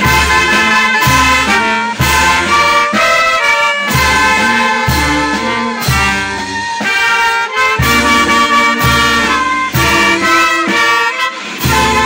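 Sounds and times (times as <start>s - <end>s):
brass band playing march: 0.0s - 12.0s.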